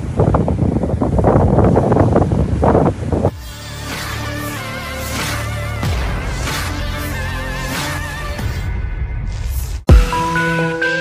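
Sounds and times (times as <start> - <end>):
wind buffeting microphone: 0.0 - 3.4
surf: 0.0 - 8.6.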